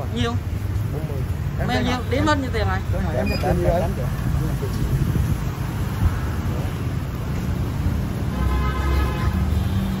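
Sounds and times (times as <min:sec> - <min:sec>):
street traffic rumble: 0:00.0 - 0:10.0.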